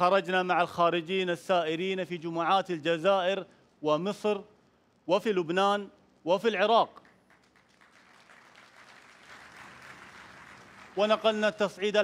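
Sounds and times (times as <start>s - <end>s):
audience applause: 7.3s - 11.6s.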